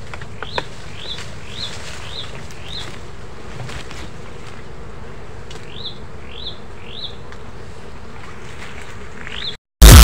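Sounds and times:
bird chirp: 5.7 - 7.2.

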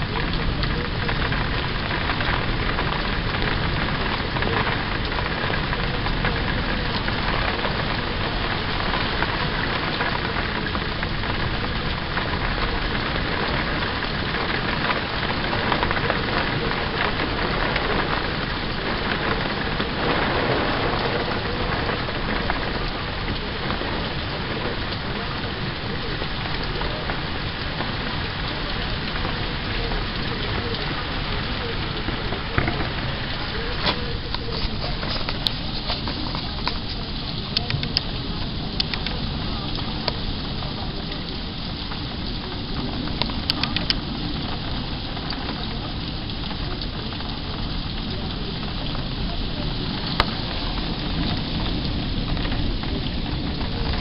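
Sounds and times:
heavy wind-driven rain: 0.0 - 54.0
raindrops tapping: 0.0 - 54.0.

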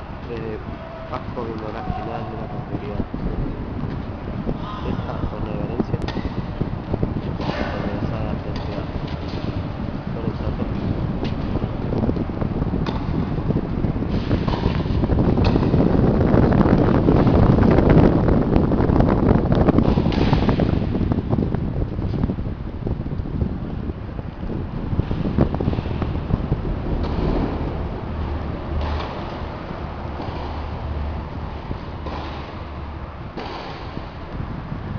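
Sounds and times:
low rumbling on microphone: 0.0 - 34.9.

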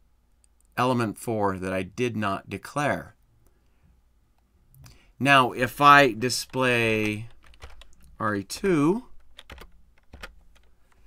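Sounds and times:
computer keyboard keystrokes: 6.4 - 8.1, 9.2 - 11.0.

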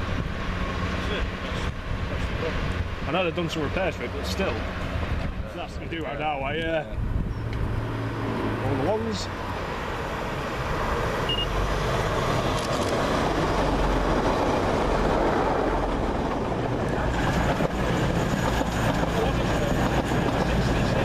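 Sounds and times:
train engines and wheels rumbling: 0.0 - 21.0.

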